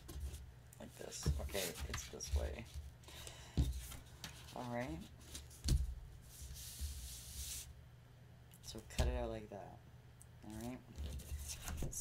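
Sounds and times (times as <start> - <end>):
hands rubbing paper: 6.3 - 7.7.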